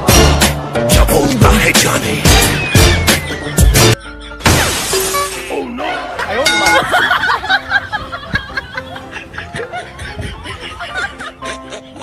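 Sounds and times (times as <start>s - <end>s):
backing music: 0.0s - 12.0s
glass shattering: 4.4s - 5.5s.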